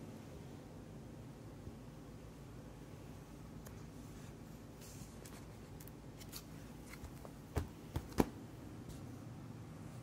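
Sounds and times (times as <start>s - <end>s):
plastic binder pages rustling: 4.8s - 8.4s.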